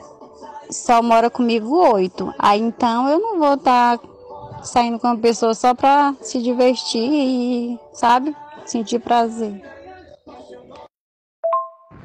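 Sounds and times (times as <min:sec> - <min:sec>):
woman's voice message through phone: 0:00.8 - 0:09.7.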